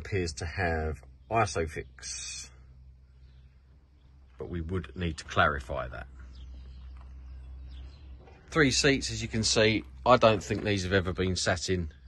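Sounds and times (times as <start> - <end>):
faint bird chirps: 0.0 - 12.0
low outdoor rumble: 0.0 - 12.0.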